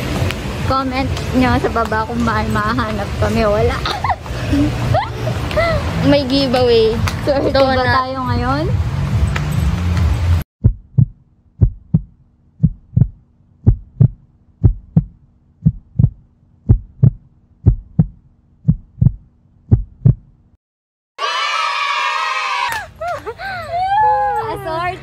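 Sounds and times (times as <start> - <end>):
heartbeat thuds: 10.6 - 20.4.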